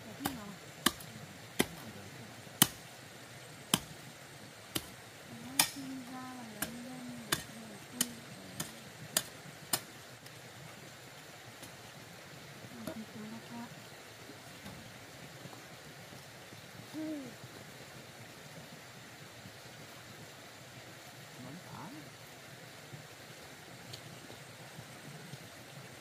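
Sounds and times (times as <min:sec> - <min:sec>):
hoe chopping into stony soil: 0:01.6 - 0:01.8, 0:02.6 - 0:02.8, 0:03.7 - 0:03.9, 0:05.6 - 0:05.9.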